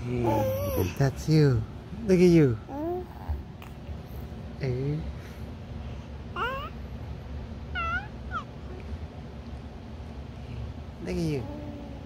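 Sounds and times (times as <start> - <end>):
low steady hum: 0.0 - 12.0
baby squealing: 0.2 - 1.0, 7.8 - 8.5.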